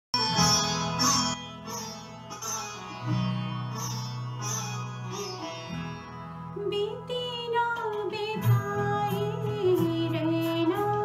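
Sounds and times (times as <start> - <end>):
plucked string notes: 0.2 - 11.0.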